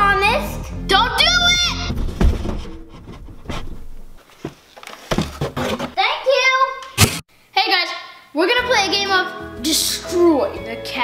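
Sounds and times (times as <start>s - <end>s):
knocks and thumps: 1.9s - 6.0s.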